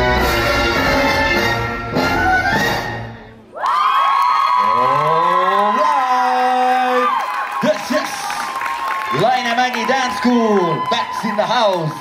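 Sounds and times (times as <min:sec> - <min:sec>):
audience cheering and whooping: 0:03.5 - 0:12.0.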